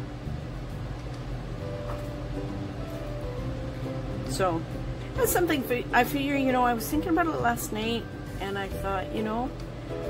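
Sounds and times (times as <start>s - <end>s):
soft background music: 0.0s - 10.0s
steady low hum: 0.0s - 10.0s.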